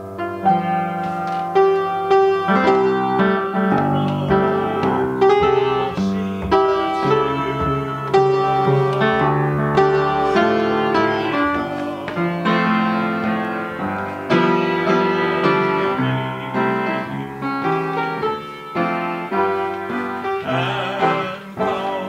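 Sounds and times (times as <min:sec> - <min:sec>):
upright piano playing slow tune: 0:00.0 - 0:22.0.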